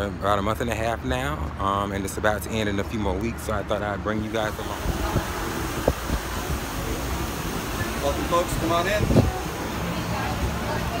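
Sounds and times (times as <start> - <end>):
cooling fan rushing hiss: 1.7 - 11.0.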